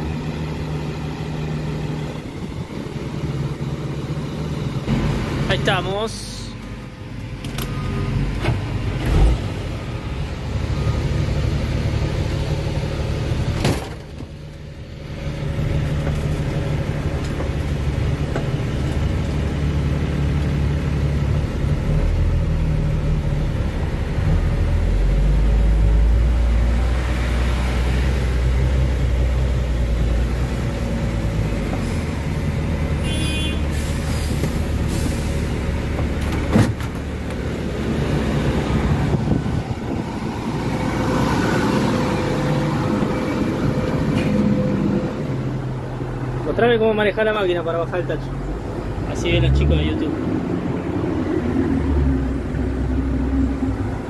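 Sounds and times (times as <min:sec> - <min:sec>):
heavy diesel engine drone: 0:00.0 - 0:54.0.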